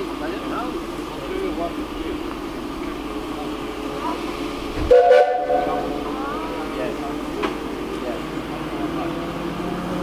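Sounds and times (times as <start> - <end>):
steam locomotive whistle: 4.9 - 6.1.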